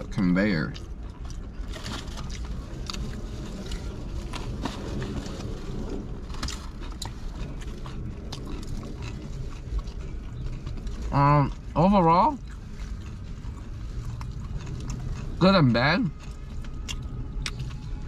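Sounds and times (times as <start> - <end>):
chewing and biting food: 0.0 - 18.0
low rumble inside car: 0.0 - 18.0
aluminium foil crinkling: 1.4 - 11.1.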